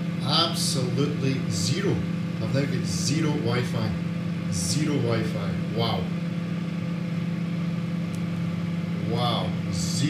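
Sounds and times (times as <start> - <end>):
microwave oven humming: 0.0 - 10.0.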